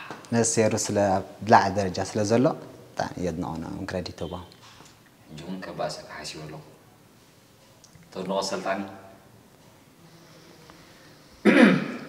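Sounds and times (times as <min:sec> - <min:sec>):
man clearing throat: 0:11.4 - 0:12.0.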